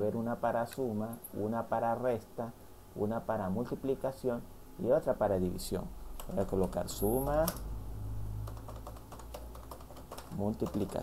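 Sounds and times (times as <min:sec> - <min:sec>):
low steady hum: 0:00.0 - 0:11.0
typing on computer keyboard: 0:06.2 - 0:07.7, 0:08.4 - 0:11.0.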